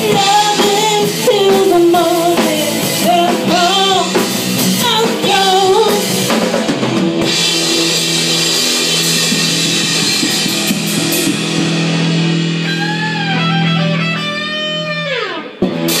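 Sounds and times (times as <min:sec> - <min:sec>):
rock band playing loud: 0:00.0 - 0:16.0
bending lead guitar notes: 0:06.8 - 0:16.0
guitar note gliding down: 0:12.6 - 0:15.6.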